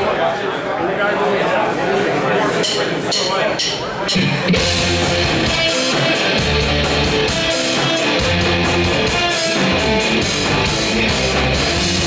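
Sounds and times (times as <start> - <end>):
live rock band playing: 4.1 - 12.0.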